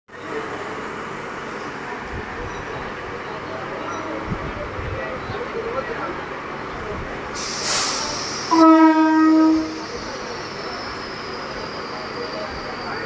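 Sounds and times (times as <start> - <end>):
air hiss: 7.4 - 8.6
train horn: 8.5 - 9.8.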